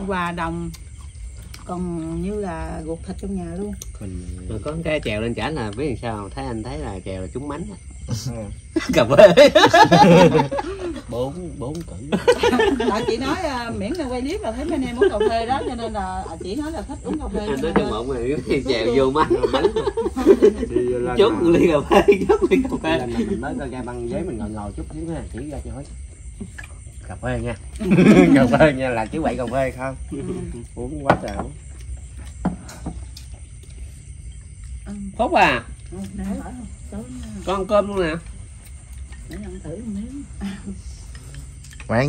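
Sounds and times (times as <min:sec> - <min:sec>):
people talking: 0:01.7 - 0:25.9, 0:27.1 - 0:31.5, 0:39.3 - 0:40.9.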